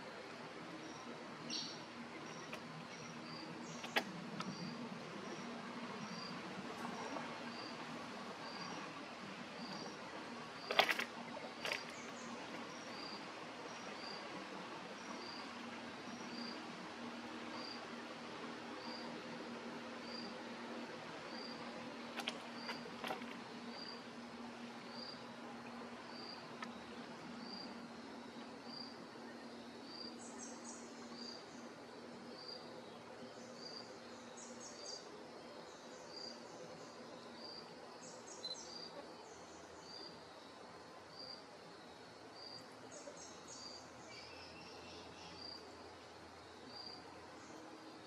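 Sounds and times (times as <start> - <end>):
outdoor background hiss: 0.0 - 48.0.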